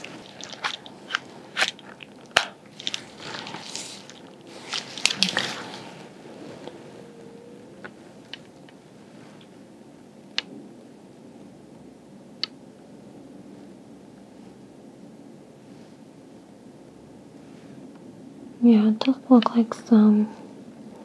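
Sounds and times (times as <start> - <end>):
gloves rustling: 0.0 - 9.7.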